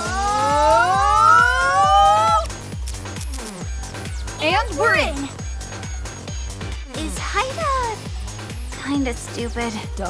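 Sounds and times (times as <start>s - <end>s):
smooth rising electronic tone: 0.0s - 2.5s
electronic music with steady beat: 0.0s - 5.2s.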